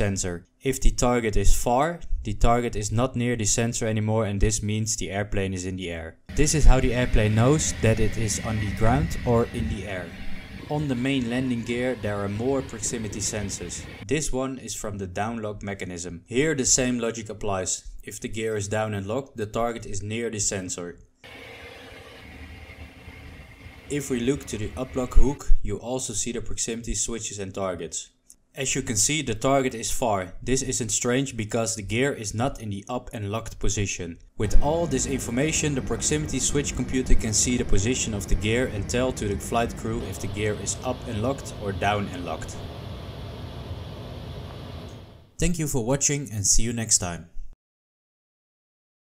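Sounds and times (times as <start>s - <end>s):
faint steady tones: 6.3s - 14.0s, 21.3s - 25.2s, 34.5s - 45.3s
low rumble: 6.3s - 14.0s, 34.4s - 45.3s
hiss: 21.3s - 25.2s.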